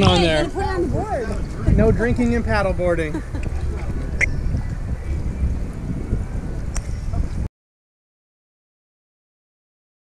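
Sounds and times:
wind buffeting microphone: 0.0s - 7.5s.

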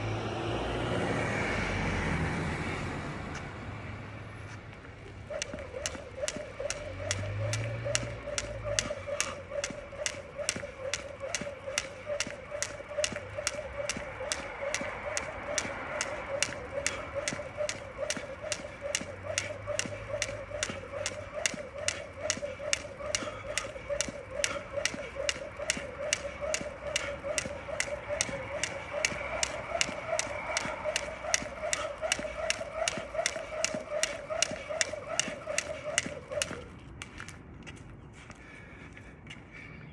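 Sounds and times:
jump rope slapping the ground: 5.0s - 37.4s.

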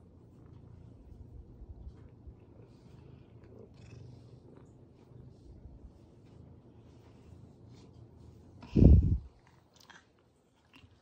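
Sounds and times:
cat purring: 0.0s - 7.9s.

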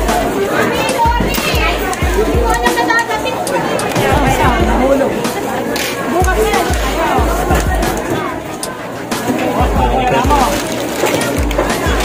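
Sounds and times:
people talking: 0.0s - 12.0s
music with bass beat: 3.9s - 5.4s, 6.2s - 8.0s, 9.6s - 10.6s, 11.3s - 12.0s.

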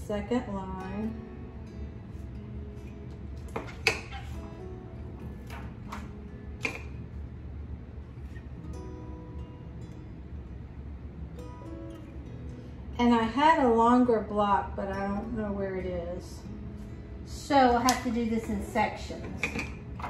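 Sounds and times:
quiet background music: 0.0s - 20.0s.

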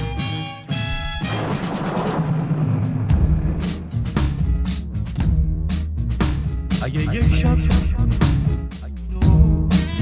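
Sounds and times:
drums: 0.0s - 10.0s.

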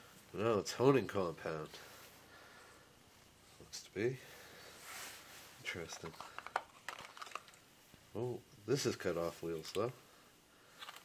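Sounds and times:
small plastic parts clicking: 5.9s - 7.6s, 10.8s - 11.0s.

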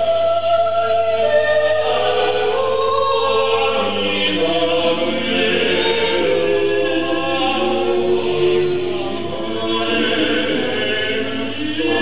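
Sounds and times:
male voices singing a cappella: 0.9s - 12.0s.

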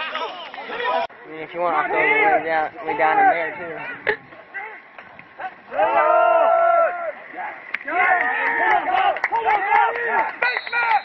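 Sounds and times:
men shouting and yelling: 0.0s - 11.0s.

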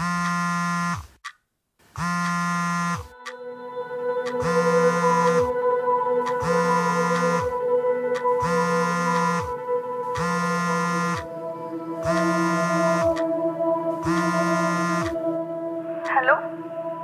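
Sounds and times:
phone vibrating buzzes: 0.0s - 1.2s, 1.9s - 3.2s, 4.3s - 5.5s, 6.2s - 7.6s, 8.2s - 11.3s, 12.0s - 13.2s, 14.0s - 15.2s
background music: 3.0s - 17.0s.

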